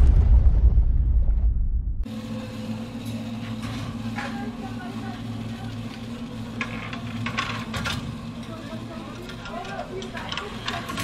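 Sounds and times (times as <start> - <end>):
steady low hum: 0.0 - 11.0
faint voices: 8.2 - 11.0.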